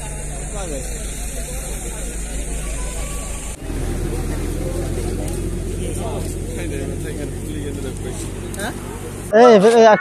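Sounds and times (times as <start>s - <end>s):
low rumble: 0.0s - 9.3s
people talking indistinctly: 0.0s - 10.0s.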